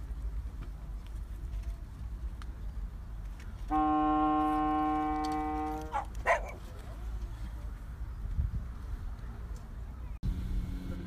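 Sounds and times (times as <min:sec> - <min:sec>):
long horn note: 0:03.7 - 0:06.0.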